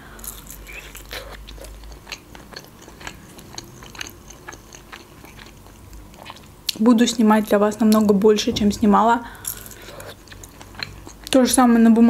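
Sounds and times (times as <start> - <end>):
chewing meat: 0.2 - 8.2, 9.4 - 11.4.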